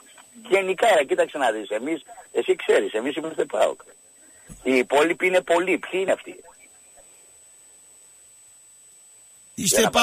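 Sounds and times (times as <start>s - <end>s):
man speaking over phone: 0.0s - 4.0s, 4.6s - 6.7s, 9.6s - 10.0s
faint steady hiss: 0.0s - 10.0s.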